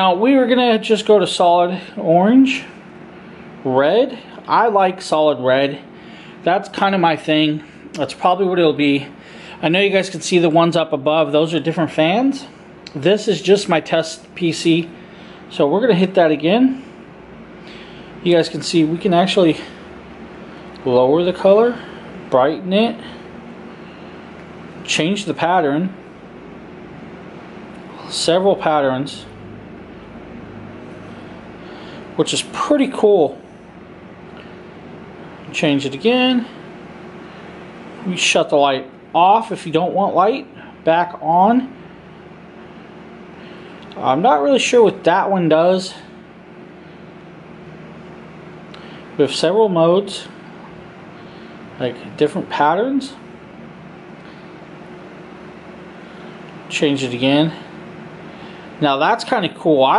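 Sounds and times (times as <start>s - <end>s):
computer fans whirring: 0.0s - 59.9s.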